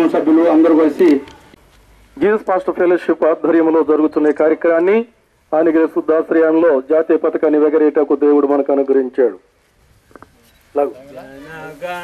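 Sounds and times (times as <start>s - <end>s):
man speaking into a microphone: 0.0s - 1.4s, 2.2s - 9.5s.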